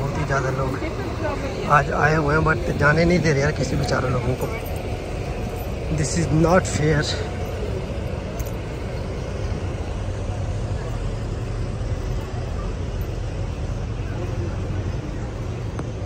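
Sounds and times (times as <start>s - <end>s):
people's voices: 0.0s - 16.0s
steady low rumble: 0.0s - 16.0s.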